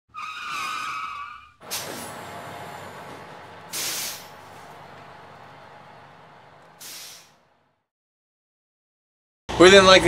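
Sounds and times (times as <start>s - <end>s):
tire squeal: 0.1s - 5.2s
short burst of hiss: 3.7s - 4.3s, 6.8s - 7.4s.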